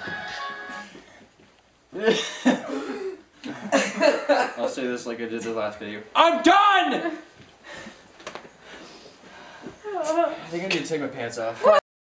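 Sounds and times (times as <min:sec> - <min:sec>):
man and woman laughing: 0:02.0 - 0:02.7.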